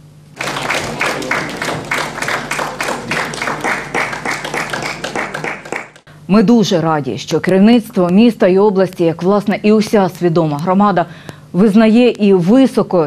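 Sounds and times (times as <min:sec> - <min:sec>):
audience applauding: 0:00.4 - 0:06.1.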